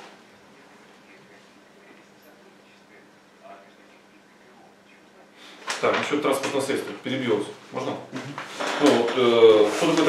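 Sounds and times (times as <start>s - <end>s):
man talking: 5.8s - 10.0s.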